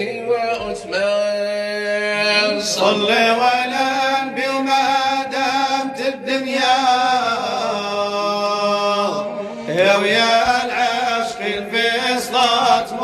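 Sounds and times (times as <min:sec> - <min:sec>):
man singing religious song: 0:00.0 - 0:13.0.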